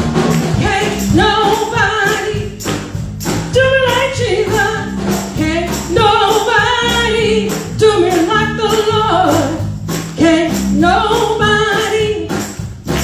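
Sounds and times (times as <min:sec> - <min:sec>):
drum kit playing: 0:00.0 - 0:13.0
low bass notes: 0:00.0 - 0:13.0
woman singing gospel: 0:00.5 - 0:02.6, 0:03.5 - 0:09.6, 0:10.2 - 0:12.5.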